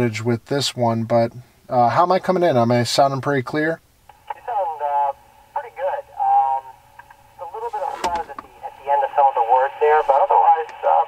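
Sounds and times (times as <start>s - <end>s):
faint low hum: 0.0s - 11.0s
person talking over radio speaker: 4.2s - 6.8s, 7.4s - 11.0s.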